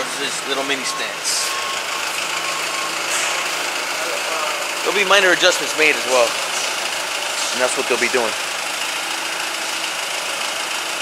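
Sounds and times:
forklift engine idling: 0.0s - 11.0s.

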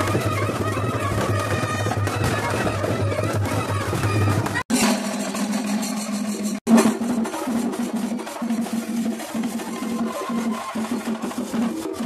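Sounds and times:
rapid drumming: 0.0s - 12.0s.

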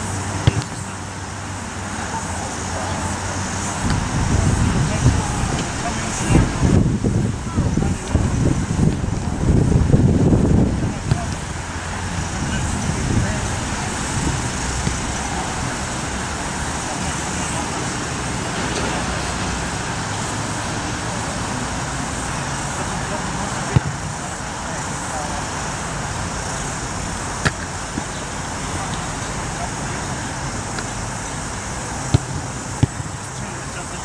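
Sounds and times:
road traffic: 0.0s - 34.0s.

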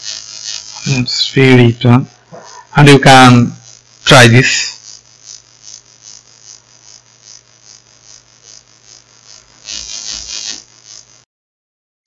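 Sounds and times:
faint background hiss: 0.0s - 5.0s
electrical mains hum: 0.0s - 11.2s.

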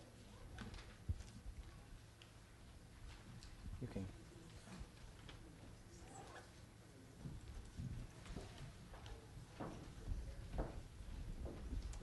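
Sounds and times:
footsteps on stage: 7.2s - 12.0s.

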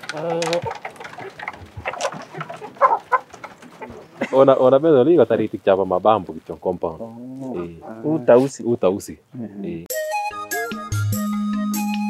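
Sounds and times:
hens clucking: 0.0s - 8.6s.

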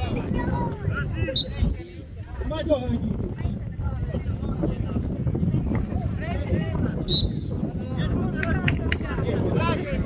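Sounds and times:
spectators' voices: 0.0s - 10.0s
wind on microphone: 0.0s - 10.0s.

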